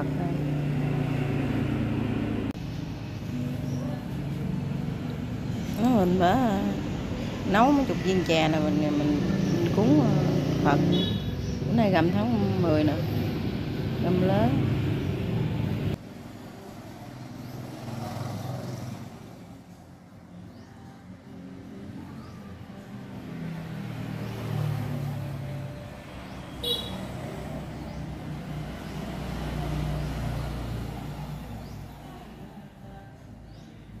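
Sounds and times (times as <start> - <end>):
passing traffic: 0.0 - 34.0.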